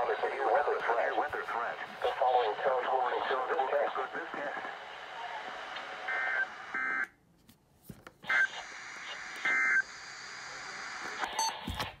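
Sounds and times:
radio hiss: 0.0 - 6.7, 8.2 - 12.0.

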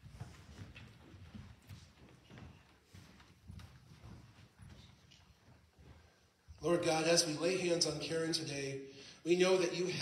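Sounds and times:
footsteps on carpet: 0.0 - 6.2.

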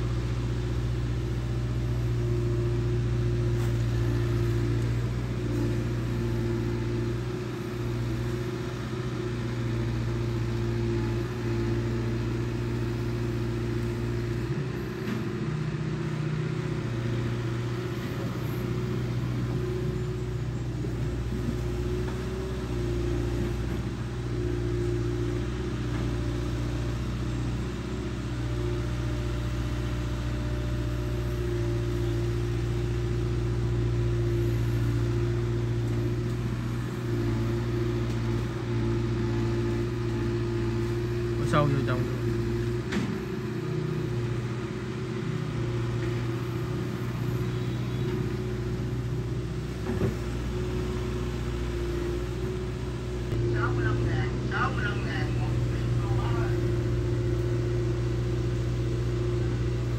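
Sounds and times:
excavator diesel engine running: 0.0 - 59.9.

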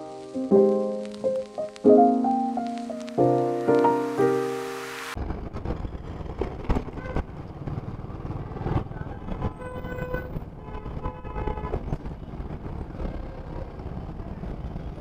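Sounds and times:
low traffic rumble: 5.2 - 15.0
vehicle horns honking: 9.6 - 11.8.

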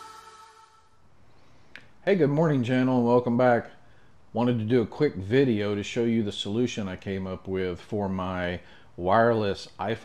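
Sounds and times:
intro music: 0.0 - 1.0.

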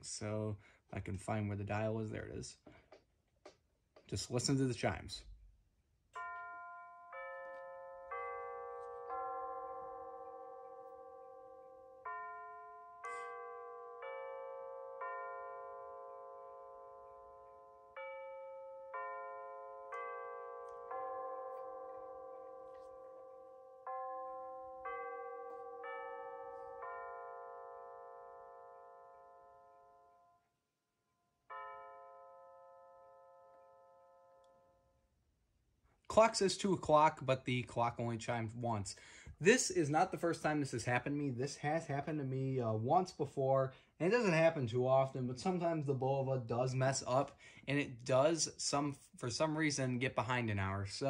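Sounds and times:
clock striking the hour: 6.2 - 29.7
electronic clock chime: 6.2 - 30.4.

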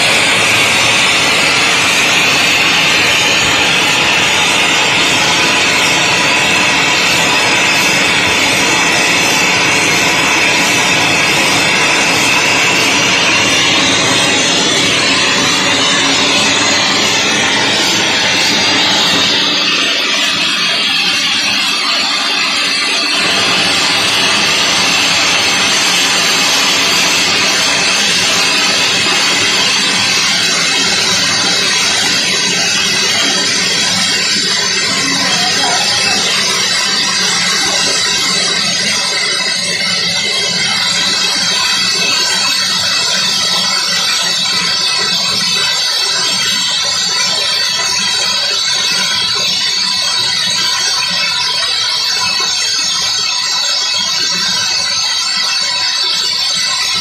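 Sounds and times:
steam blasting from valve: 0.0 - 57.0.

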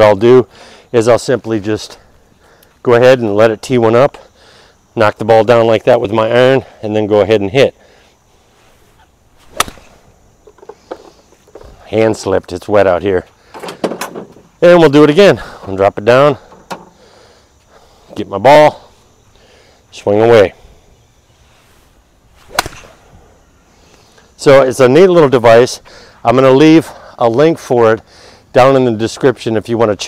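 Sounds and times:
golf club swish: 8.6 - 10.0, 22.4 - 23.1
golf club striking ball: 9.5 - 9.9, 22.5 - 22.9.

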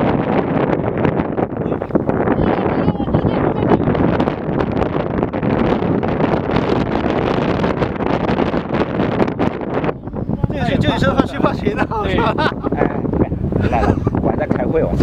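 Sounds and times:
wind buffeting microphone: 0.0 - 15.0.

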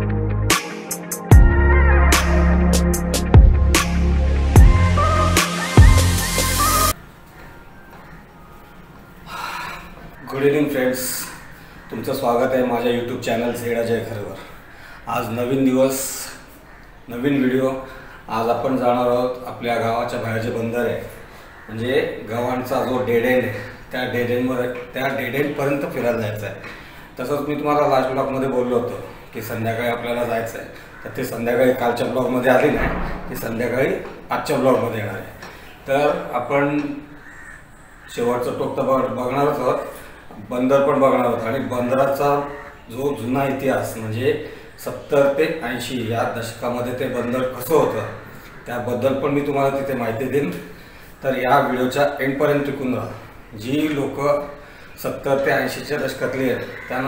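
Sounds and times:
man breathing: 50.7 - 51.2, 54.6 - 55.0.

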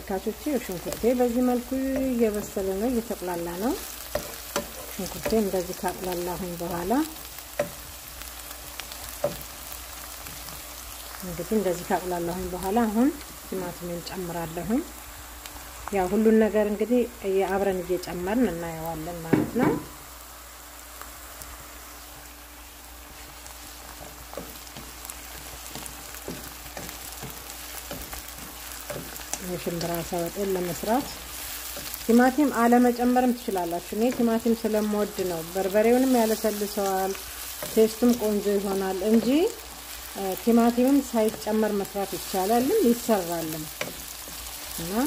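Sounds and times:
onions sizzling in oil: 0.0 - 45.0
wooden spatula stirring: 0.9 - 6.2, 23.1 - 32.8.

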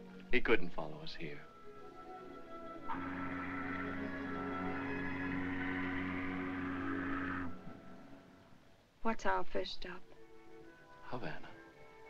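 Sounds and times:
ship's whistle low blast: 2.6 - 8.2.

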